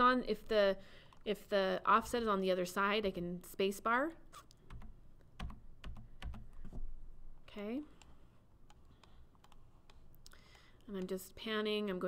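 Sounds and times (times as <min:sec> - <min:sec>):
computer keyboard and mouse clicks: 0:04.4 - 0:06.8, 0:07.9 - 0:11.2.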